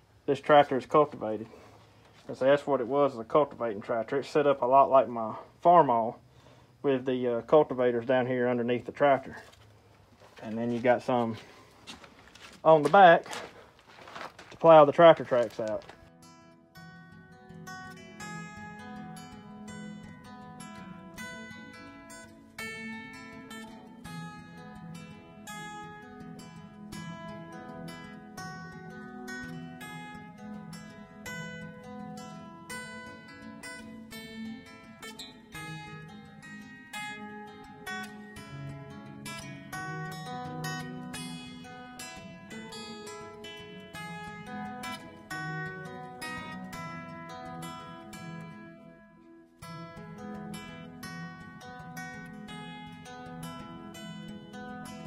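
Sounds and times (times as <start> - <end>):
plucked guitar music: 0.0 - 55.0.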